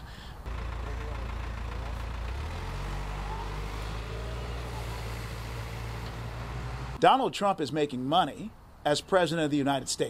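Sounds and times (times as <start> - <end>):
vehicle engine hum: 0.4 - 7.0.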